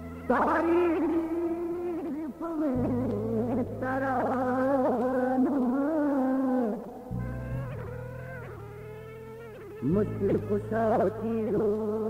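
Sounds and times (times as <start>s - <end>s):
harmonium chord over drone: 0.0s - 4.2s, 7.0s - 12.0s.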